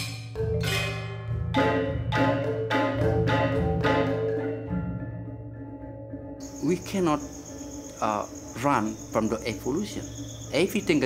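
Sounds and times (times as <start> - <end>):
insects chirping: 3.8 - 11.0.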